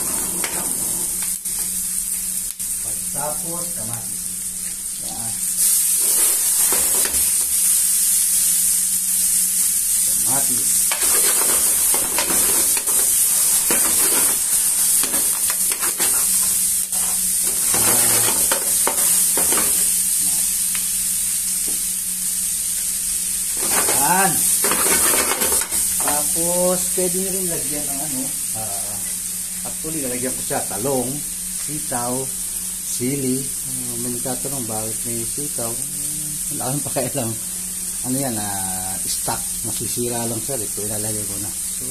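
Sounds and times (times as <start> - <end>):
metal spoon scraping pan: 0.0 - 1.2, 10.9 - 19.9, 23.6 - 26.1
vegetables sizzling in hot oil: 0.0 - 41.9.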